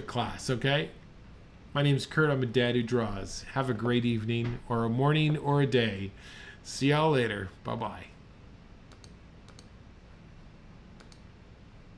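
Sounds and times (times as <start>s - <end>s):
low steady hum: 0.0s - 11.9s
faint clicks: 8.9s - 9.7s, 11.0s - 11.3s.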